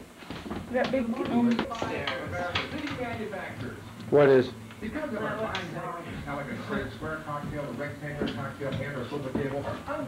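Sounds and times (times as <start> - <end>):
people talking quietly: 0.6 - 10.0.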